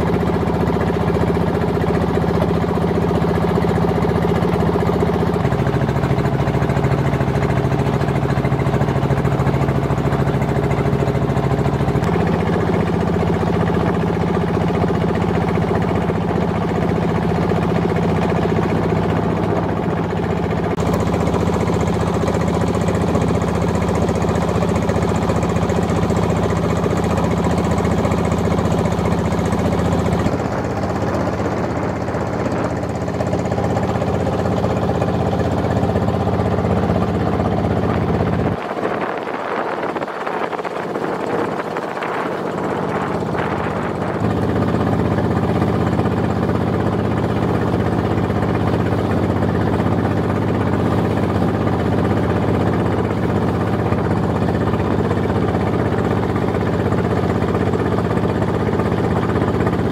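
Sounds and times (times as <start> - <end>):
boat engine chugging: 0.0 - 59.9.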